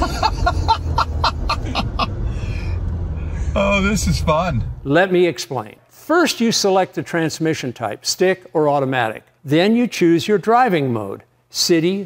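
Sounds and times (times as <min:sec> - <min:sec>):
man laughing heartily: 0:00.0 - 0:02.2
vehicle engine and tyres rumble: 0:00.0 - 0:05.1.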